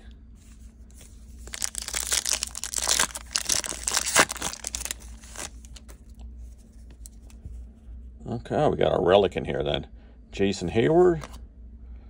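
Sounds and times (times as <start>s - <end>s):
plastic wrapper tearing and crinkling: 1.4s - 6.2s.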